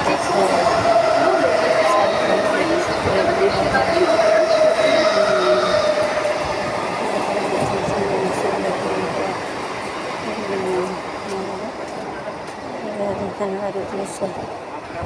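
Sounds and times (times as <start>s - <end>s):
electric train rumbling: 0.0s - 15.0s
train whine: 0.0s - 15.0s.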